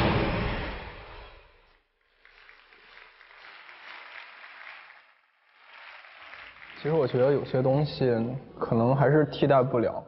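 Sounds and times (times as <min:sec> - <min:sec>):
audience applauding: 0:02.0 - 0:08.4.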